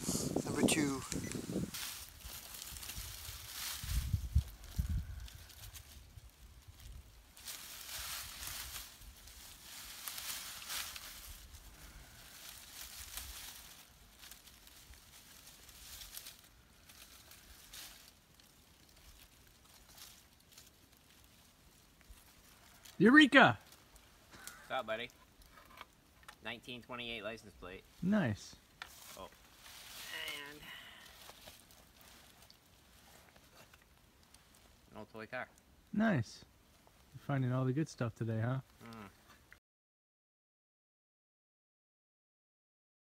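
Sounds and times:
dry leaves and soil rustling: 0.0 - 37.7, 38.4 - 39.5.

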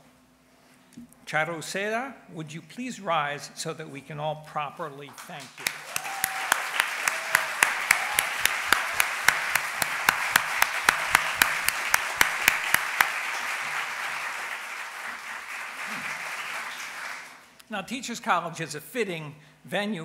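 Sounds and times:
hands clapping close by: 5.1 - 17.4
audience applauding: 5.2 - 17.6.

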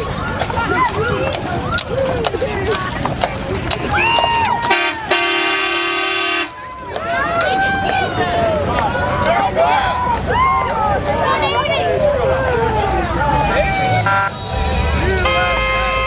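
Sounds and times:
crowd shouting and calling out: 0.0 - 16.0
horn blast: 4.7 - 6.6, 13.8 - 16.0.

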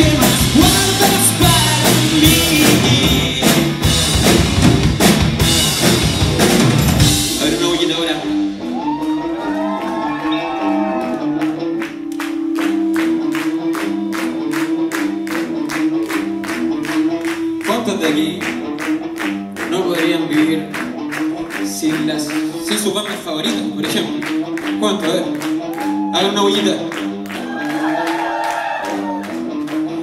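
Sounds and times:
rock band playing: 0.0 - 30.0
audience clapping along: 8.8 - 30.0.

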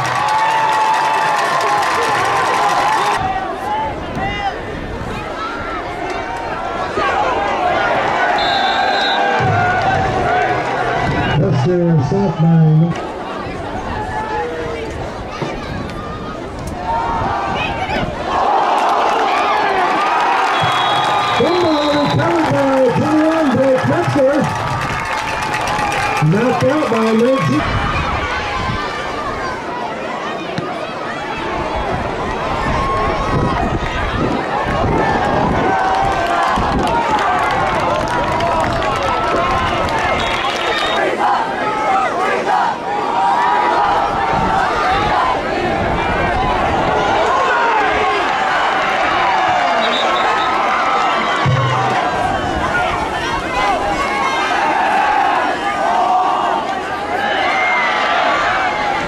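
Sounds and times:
stadium crowd shouting and cheering: 0.0 - 59.0.

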